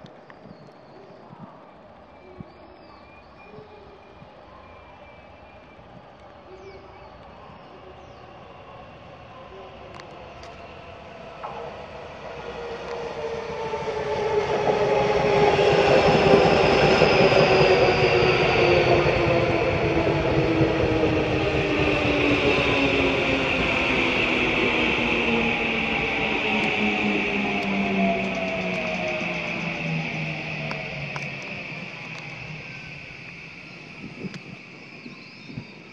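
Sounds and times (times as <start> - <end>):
electric train motor whine: 8.8 - 35.9.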